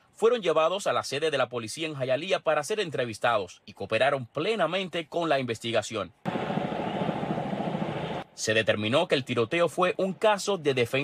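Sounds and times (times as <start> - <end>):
engine with fast flutter: 6.3 - 8.2.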